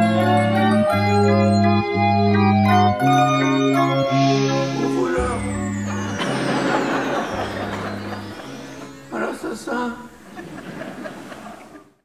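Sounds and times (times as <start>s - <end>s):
low music notes: 0.0s - 11.4s.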